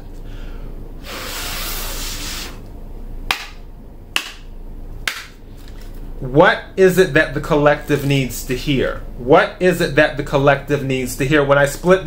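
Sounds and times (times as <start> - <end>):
breath blown onto cards: 1.0 - 2.6.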